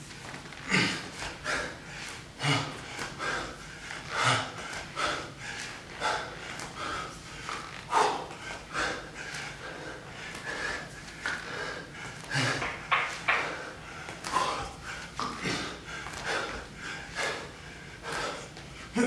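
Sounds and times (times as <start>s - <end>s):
man breathing hard: 0.6s - 19.0s.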